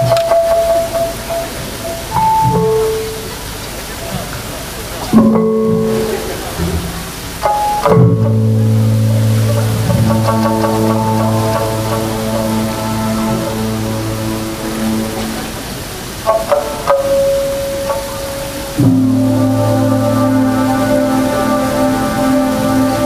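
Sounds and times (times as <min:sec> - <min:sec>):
river rushing: 0:00.0 - 0:23.0
electronic keyboard chords: 0:05.1 - 0:23.0.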